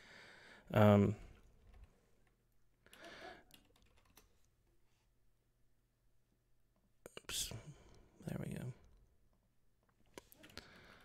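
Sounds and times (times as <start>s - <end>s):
faint keyboard clicks: 1.4s - 4.5s.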